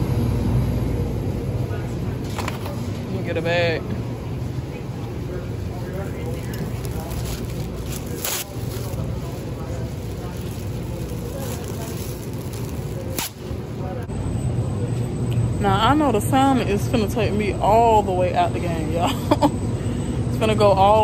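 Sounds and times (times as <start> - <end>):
low store hum: 0.0 - 21.0
plastic bag snapping: 6.5 - 9.0, 11.1 - 13.5.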